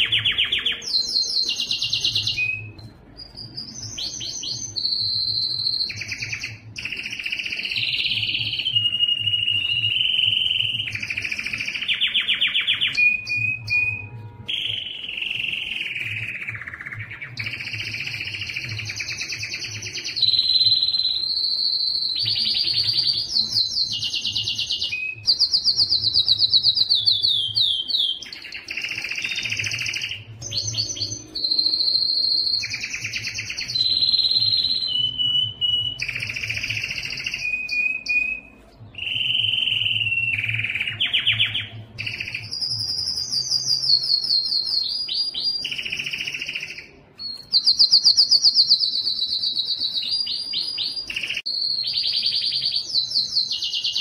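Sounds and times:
canary singing trills: 0.0 - 54.0.

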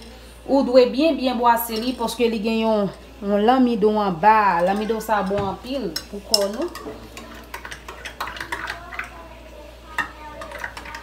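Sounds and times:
spoon clinking against glass: 5.9 - 7.3.

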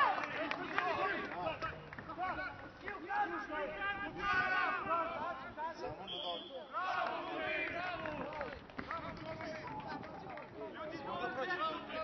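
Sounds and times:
men shouting and calling: 0.0 - 8.3.

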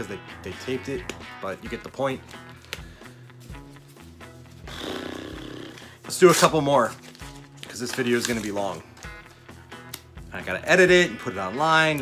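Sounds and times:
music with steady beat: 0.0 - 6.0, 9.0 - 12.0.

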